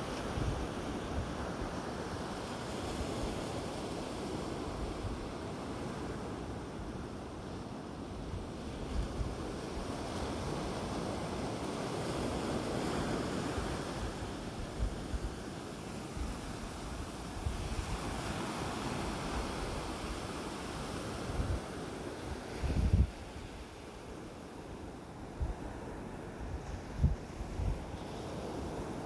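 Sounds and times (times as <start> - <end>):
ocean surf breaking: 8.1 - 29.0
wind buffeting microphone: 22.5 - 23.6, 26.4 - 29.0.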